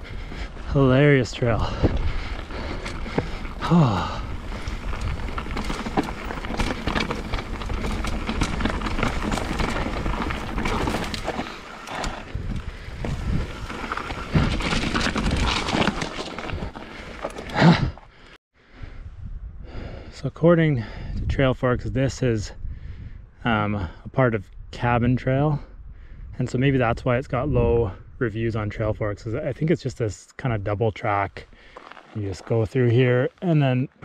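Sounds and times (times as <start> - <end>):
bike tyres on dirt and stones: 0.0 - 18.4, 31.0 - 34.0
rider sighing: 0.0 - 18.4
bike rattling and knocking: 1.4 - 18.0.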